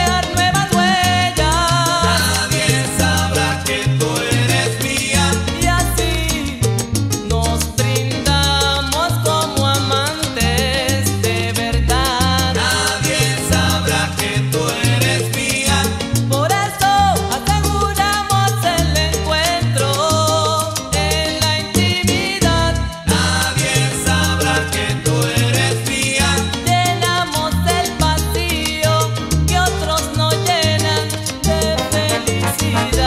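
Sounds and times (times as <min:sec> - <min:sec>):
bass line: 0:00.0 - 0:33.0
melodic lines: 0:31.6 - 0:33.0
dense percussion: 0:31.7 - 0:33.0.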